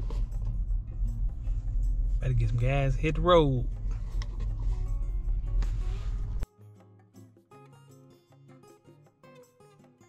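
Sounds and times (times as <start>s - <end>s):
car rumble from inside cabin: 0.0s - 6.4s.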